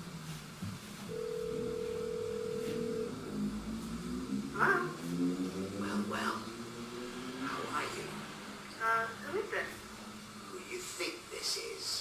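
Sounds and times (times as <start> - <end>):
steady telephone tone: 1.1 - 3.4.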